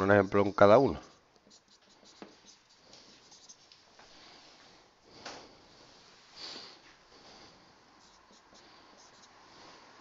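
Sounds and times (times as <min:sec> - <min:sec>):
marker on a whiteboard: 0:00.0 - 0:05.5, 0:06.6 - 0:10.0.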